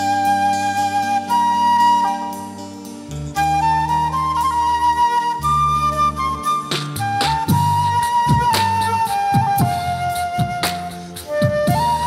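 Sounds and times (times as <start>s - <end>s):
flute playing slow melody: 0.0s - 12.0s.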